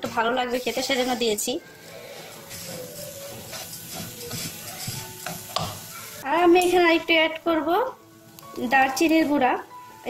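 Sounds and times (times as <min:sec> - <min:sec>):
light sizzle from hot pan: 0:00.0 - 0:10.0
spatula scraping a wok: 0:00.5 - 0:06.2.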